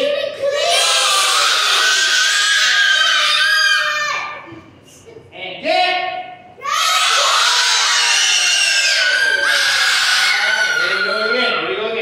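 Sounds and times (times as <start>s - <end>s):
children yelling high-pitched: 0.0s - 4.4s, 6.6s - 11.8s.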